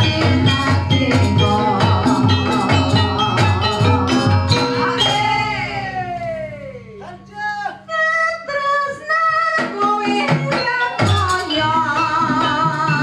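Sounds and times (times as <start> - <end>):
steady drum beat: 0.0 - 6.6
metallophones playing: 0.0 - 8.8.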